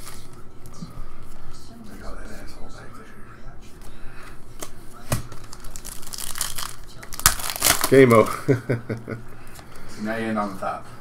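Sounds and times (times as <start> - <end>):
foil wrapper crinkling and tearing: 5.3 - 8.3.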